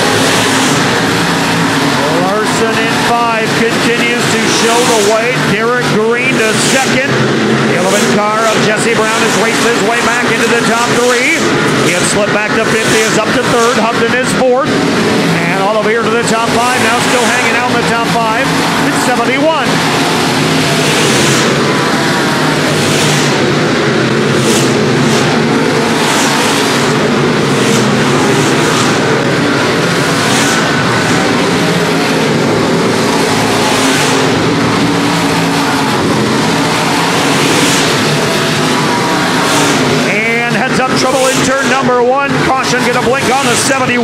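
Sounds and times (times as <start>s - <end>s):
race car engines droning: 0.0s - 44.0s.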